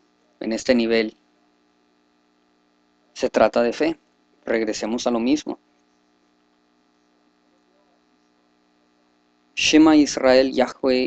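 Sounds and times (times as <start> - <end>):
faint electrical hum: 0.0 - 11.0
man speaking: 0.4 - 1.1, 3.2 - 5.6, 9.6 - 11.0.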